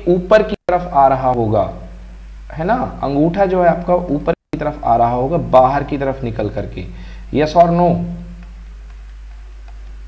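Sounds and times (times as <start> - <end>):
steady low hum: 0.0 - 10.0
faint ticks: 8.4 - 10.0.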